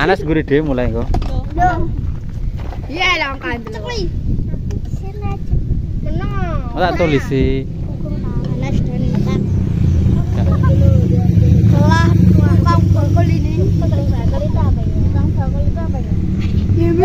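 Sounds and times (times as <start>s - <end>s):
children chattering: 2.8s - 17.0s
low rumble: 4.0s - 17.0s.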